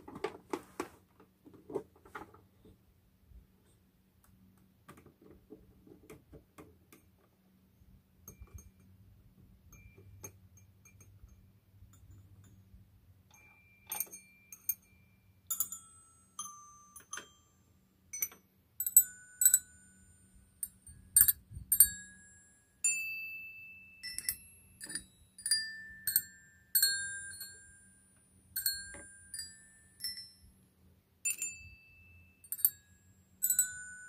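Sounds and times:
music box bells melody: 9.7 - 28.0, 28.6 - 30.6, 31.3 - 34.0.

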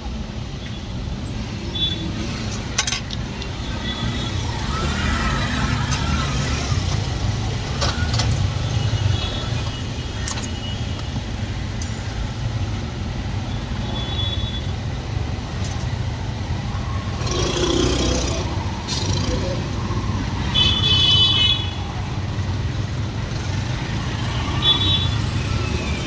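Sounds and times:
street traffic rumble: 0.0 - 26.0.

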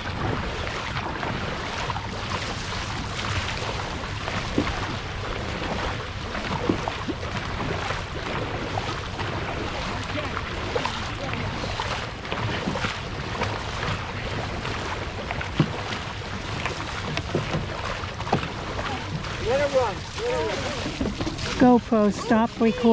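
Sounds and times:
paddles stroking through water: 0.0 - 22.9
person calling out: 22.2 - 22.9.

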